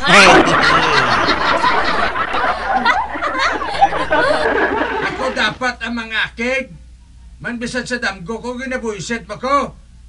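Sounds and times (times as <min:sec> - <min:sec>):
loud laughter: 0:00.0 - 0:05.6.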